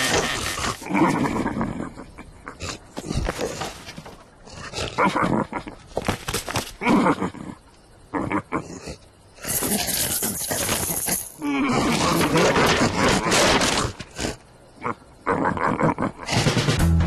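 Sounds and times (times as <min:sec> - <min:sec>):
cartoon grunts and growls: 0:06.8 - 0:13.4, 0:14.8 - 0:16.4.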